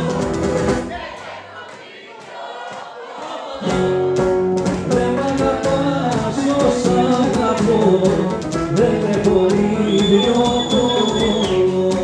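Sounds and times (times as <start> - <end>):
faint voices singing: 0.0 - 4.1, 4.7 - 12.0
plucked lutes: 3.7 - 12.0.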